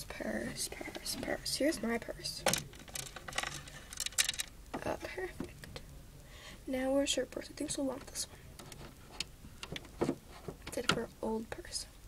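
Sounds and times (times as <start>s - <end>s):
plastic toys clicking and clattering: 2.3s - 4.9s.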